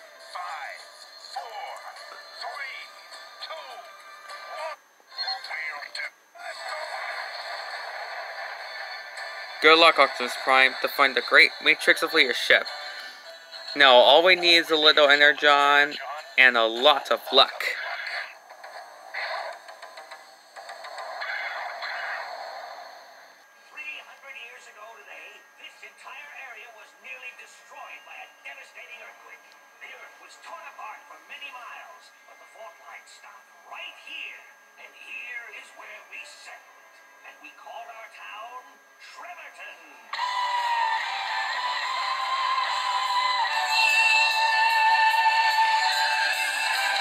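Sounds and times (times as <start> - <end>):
voice or music: 9.6 - 17.8, 40.2 - 47.0
rushing cartoon sound effect: 21.2 - 22.4.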